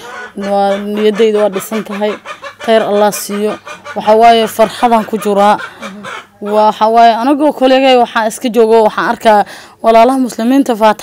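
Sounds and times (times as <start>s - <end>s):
woman talking: 0.0s - 11.0s.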